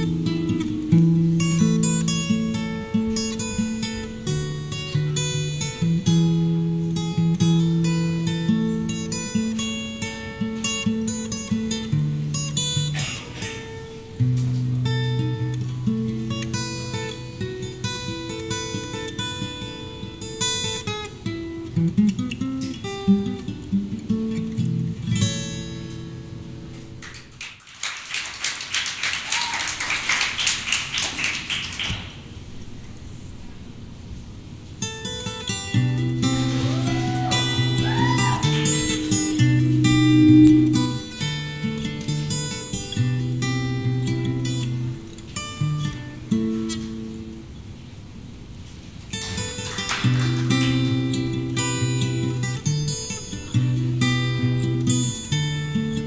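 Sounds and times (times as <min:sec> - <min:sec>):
fingerstyle acoustic guitar: 0:00.0 - 0:27.4, 0:32.1 - 0:56.0
audience clapping: 0:27.0 - 0:32.3, 0:36.4 - 0:39.2, 0:49.1 - 0:51.4.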